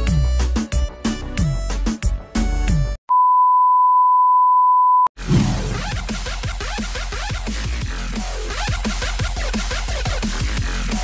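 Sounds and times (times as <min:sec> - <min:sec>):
music: 0:00.0 - 0:03.0, 0:05.2 - 0:11.0.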